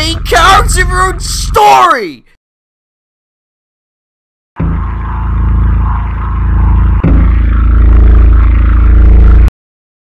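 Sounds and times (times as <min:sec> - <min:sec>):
low droning layered tone: 0:04.6 - 0:09.5.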